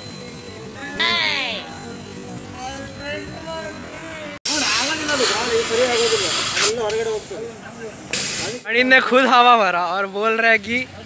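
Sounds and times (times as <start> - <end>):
voices talking: 0.0 - 11.0
air hissing from tyre valve: 4.5 - 7.5, 8.1 - 8.7.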